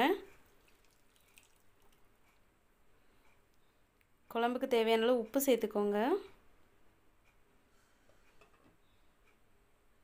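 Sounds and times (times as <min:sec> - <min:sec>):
faint liquid drips and pops: 0:00.4 - 0:02.4.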